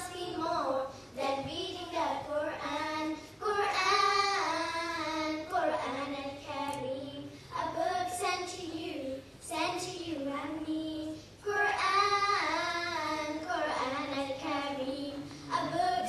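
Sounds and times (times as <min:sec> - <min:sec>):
children singing through microphones: 0:00.0 - 0:16.0.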